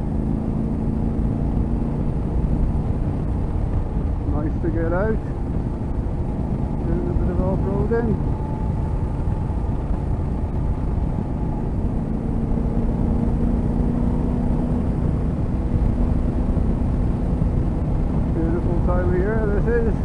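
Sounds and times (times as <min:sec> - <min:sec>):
motorcycle engine cruising: 0:00.0 - 0:20.0
wind and road noise: 0:00.0 - 0:20.0.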